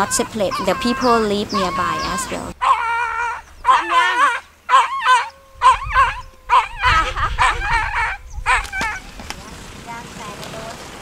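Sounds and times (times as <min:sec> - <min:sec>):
dog whining and yelping: 0:00.1 - 0:09.0.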